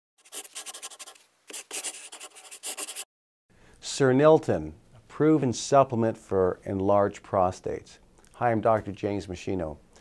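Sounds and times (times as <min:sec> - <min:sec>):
pencil scratching on paper: 0:00.2 - 0:03.1.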